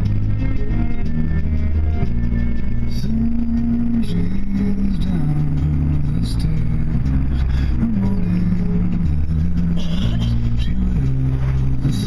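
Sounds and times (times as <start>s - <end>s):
car road rumble: 0.0s - 12.0s
person singing long notes: 2.9s - 12.0s.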